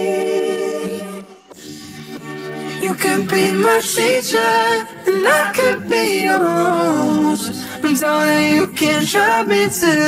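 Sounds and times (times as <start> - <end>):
humming backing harmonies: 0.0 - 10.0
pop lead vocals: 0.0 - 10.0.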